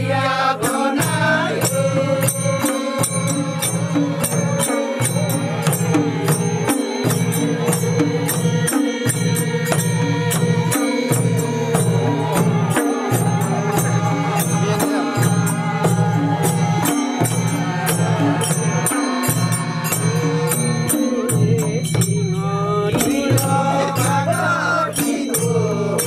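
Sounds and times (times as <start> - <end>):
chant-like droning: 0.0 - 26.0
hand drums beating: 0.0 - 26.0.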